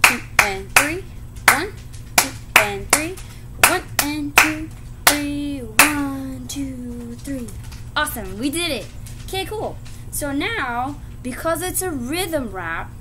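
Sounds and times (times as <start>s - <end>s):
hand claps in rhythm: 0.0s - 6.1s
woman counting aloud: 0.0s - 13.0s.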